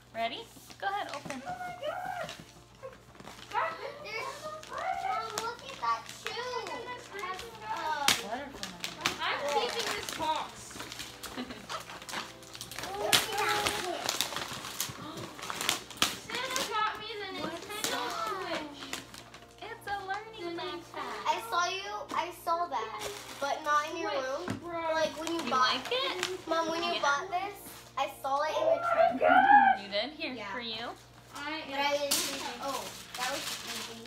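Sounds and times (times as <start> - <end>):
wrapping paper ripping: 0.5 - 21.6, 22.8 - 29.7, 31.0 - 34.0
children chattering: 28.4 - 29.8.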